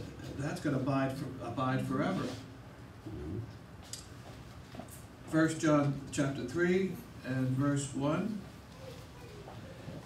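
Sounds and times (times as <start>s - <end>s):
low murmur of voice: 8.4s - 10.0s.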